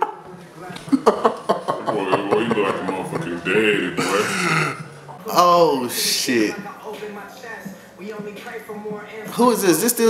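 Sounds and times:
man laughing: 0:00.9 - 0:04.9.

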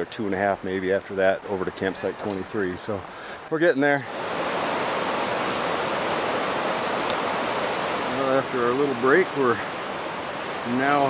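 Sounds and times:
mountain stream rushing over boulders: 0:00.0 - 0:11.0.

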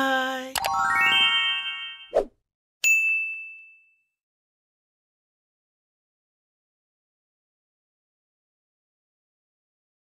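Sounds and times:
rising chiming tones: 0:00.6 - 0:02.2
bright bell ding: 0:02.8 - 0:04.1.

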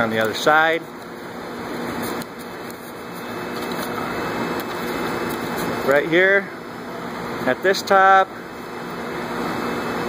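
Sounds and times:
steady low background hum: 0:00.0 - 0:10.0
paper being creased and folded: 0:01.9 - 0:05.8.

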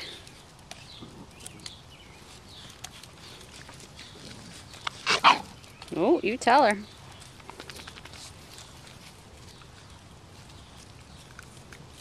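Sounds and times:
puppy barking: 0:05.1 - 0:05.5.

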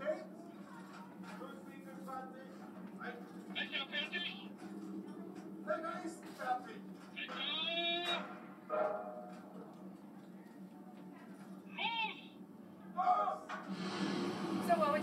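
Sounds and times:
man shouting commands over speakers: 0:11.7 - 0:12.3, 0:13.0 - 0:13.5
rushing noise: 0:13.7 - 0:15.0.

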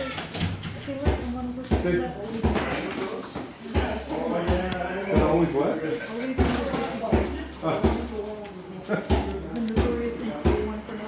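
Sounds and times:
voices talking in background: 0:00.0 - 0:11.0.

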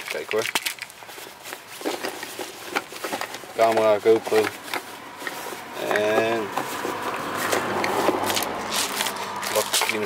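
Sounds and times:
bags knocking: 0:00.0 - 0:10.0
fabric and nylon bags rustling: 0:00.0 - 0:10.0.

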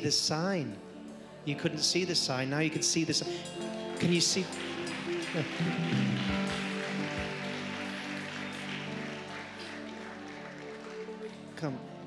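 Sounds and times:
keyboard sustained chords: 0:00.0 - 0:12.0.

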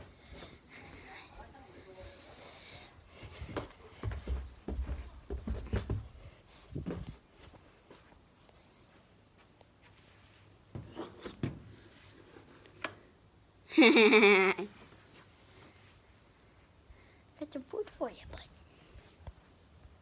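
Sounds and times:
muffled thumps and rubbing: 0:05.3 - 0:07.2.

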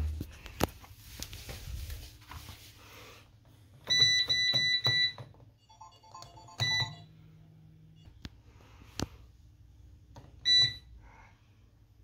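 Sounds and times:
low steady hum: 0:00.0 - 0:12.0
washing machine beeps: 0:03.8 - 0:08.2, 0:10.4 - 0:11.0.

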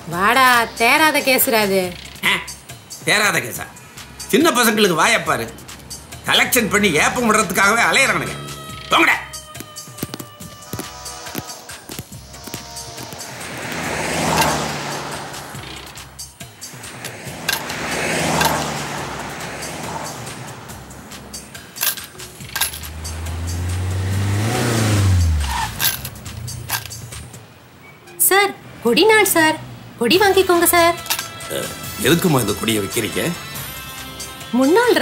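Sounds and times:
cars whooshing past: 0:11.0 - 0:27.4
car engine tone rising: 0:11.9 - 0:27.9.

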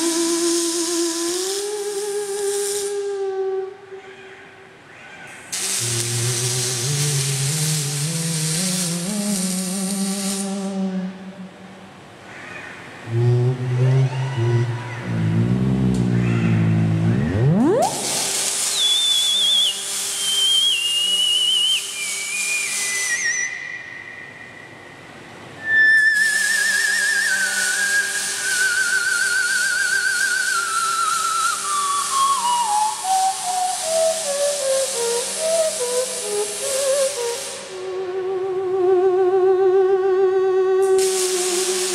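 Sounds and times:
welding arcs crackling hiss: 0:00.0 - 0:03.8, 0:05.3 - 0:11.8, 0:12.6 - 0:38.2, 0:40.8 - 0:41.9
theremin tones with vibrato: 0:00.0 - 0:04.0, 0:13.0 - 0:41.9.

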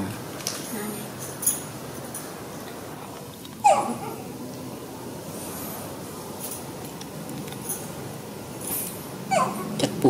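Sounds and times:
baby monkey crying: 0:03.6 - 0:04.3, 0:09.3 - 0:09.8.

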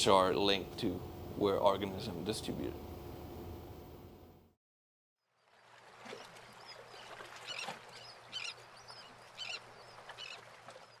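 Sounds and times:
steady low hum and hiss: 0:00.0 - 0:04.5.

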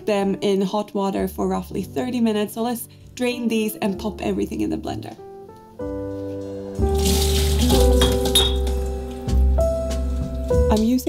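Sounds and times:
background music: 0:00.0 - 0:11.0
water pouring through metal sieve: 0:06.8 - 0:09.3
sieve and bowl clinking: 0:07.0 - 0:09.0.

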